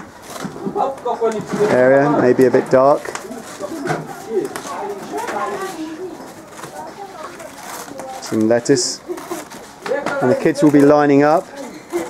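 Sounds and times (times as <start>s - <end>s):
indistinct background voices: 0.5s - 12.0s.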